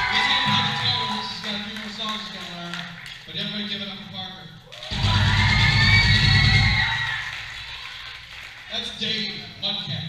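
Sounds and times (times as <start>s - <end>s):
crowd cheering: 0.0s - 3.1s, 4.6s - 9.6s.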